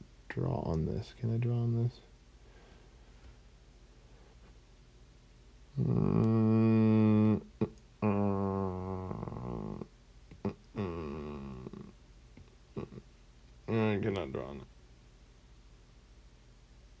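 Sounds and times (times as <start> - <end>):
man making wordless sounds: 5.7 - 12.0, 12.7 - 14.7.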